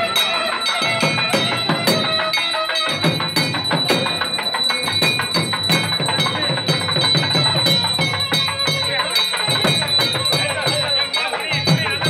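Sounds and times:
bell ringing: 0:00.0 - 0:12.0.

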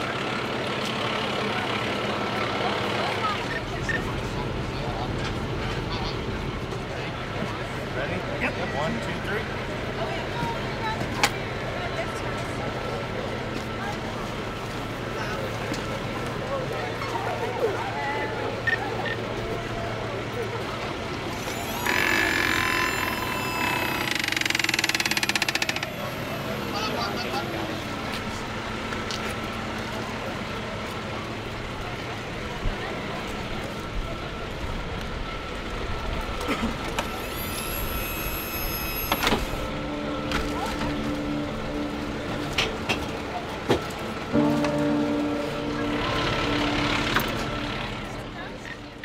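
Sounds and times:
fire engine diesel idling: 0:00.0 - 0:21.9, 0:22.9 - 0:37.2, 0:39.5 - 0:49.0
low tone sliding downward: 0:21.2 - 0:28.9, 0:31.5 - 0:49.0
electric motor whining: 0:21.3 - 0:26.8, 0:37.0 - 0:39.8.

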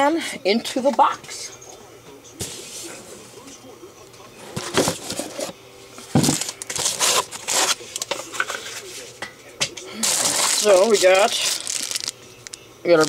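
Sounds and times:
cardboard box contents rustling: 0:04.5 - 0:05.5.

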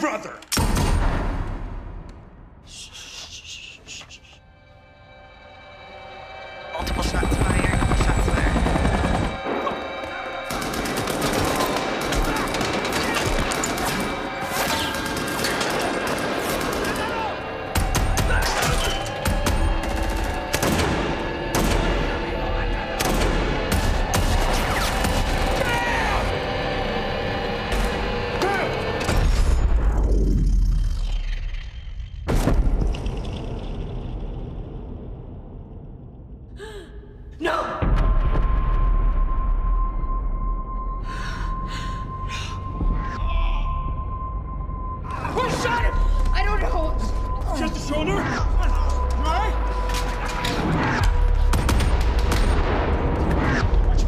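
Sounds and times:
helicopter rotor chopping: 0:06.8 - 0:09.4
person gasping: 0:36.5 - 0:37.2.

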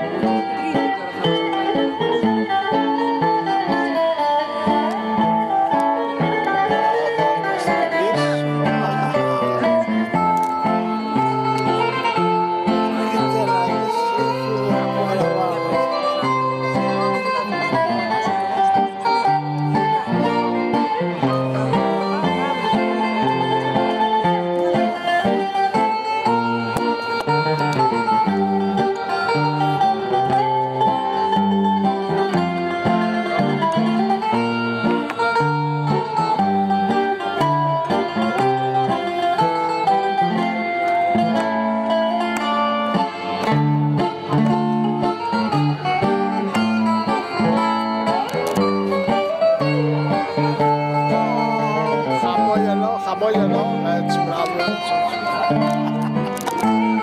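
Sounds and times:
acoustic guitar: 0:00.0 - 0:57.0
plucked string instruments: 0:00.0 - 0:57.0.

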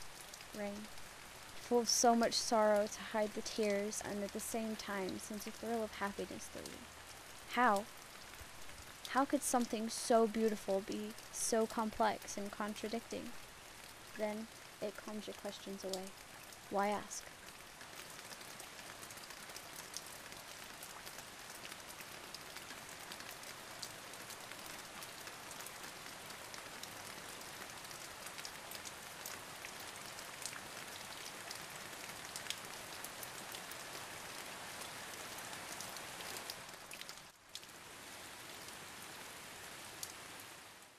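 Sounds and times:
raindrops ticking: 0:00.0 - 0:34.0, 0:34.7 - 0:37.7
steady rain hiss: 0:00.0 - 0:40.9.

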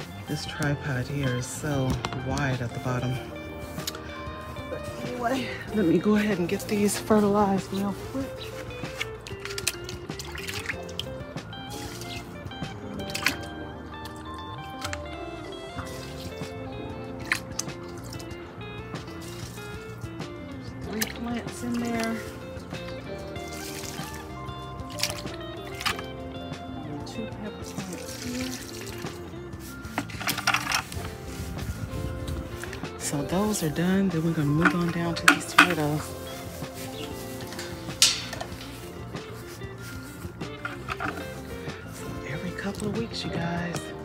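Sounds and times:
liquid splashing into soil: 0:00.0 - 0:15.1, 0:17.2 - 0:26.1, 0:27.0 - 0:44.0
background music: 0:00.0 - 0:44.0.

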